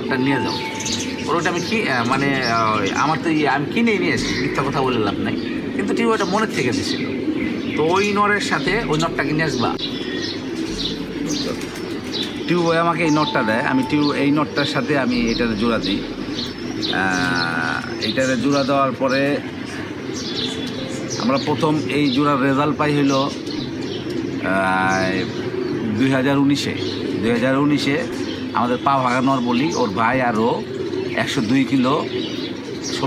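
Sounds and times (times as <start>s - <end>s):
pigeons cooing: 0.0s - 33.0s.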